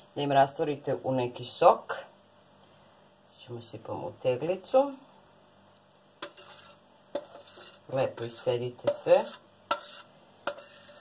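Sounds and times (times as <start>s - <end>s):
faint scraping: 6.2s - 11.0s.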